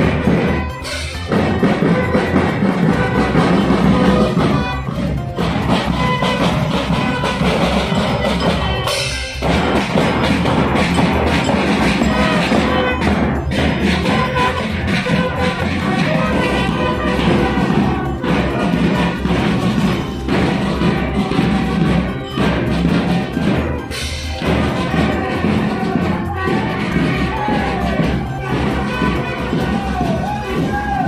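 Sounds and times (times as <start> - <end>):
bugles playing brass notes: 0.0 - 31.0
drums and bass drums: 0.0 - 31.0.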